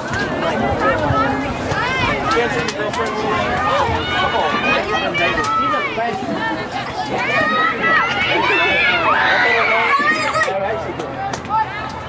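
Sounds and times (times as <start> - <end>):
high voices shouting: 0.0 - 12.0.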